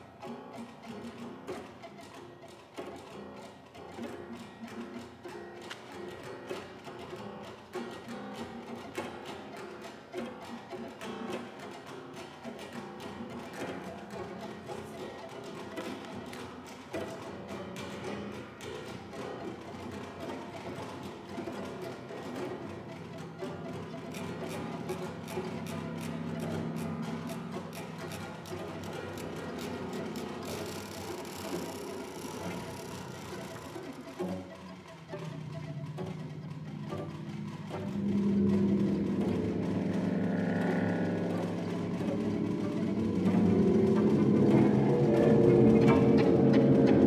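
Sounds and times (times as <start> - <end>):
chamber ensemble playing: 0.0 - 47.0.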